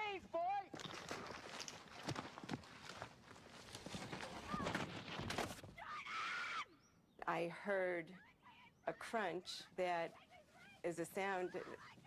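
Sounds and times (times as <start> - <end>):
horse hooves knocking and scrabbling: 0.2 - 5.7.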